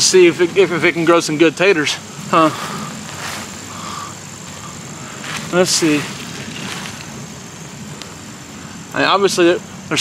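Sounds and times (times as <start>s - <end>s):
hands rustling potting mix: 0.0s - 8.2s
background hiss and hum: 0.0s - 10.0s.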